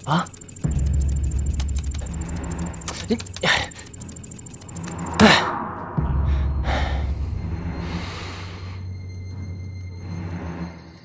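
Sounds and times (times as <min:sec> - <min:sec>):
dramatic background music drone: 0:00.0 - 0:11.0
short whoosh: 0:05.0 - 0:07.5.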